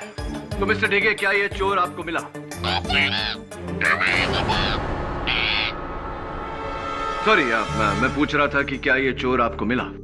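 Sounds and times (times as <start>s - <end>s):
dramatic background music: 2.3s - 10.0s
parrot squawk: 2.6s - 5.8s.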